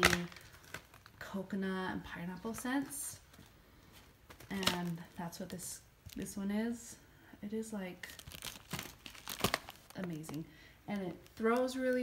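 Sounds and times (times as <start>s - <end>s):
paper packaging crinkling: 0.0s - 1.4s, 4.2s - 6.4s, 8.0s - 12.0s.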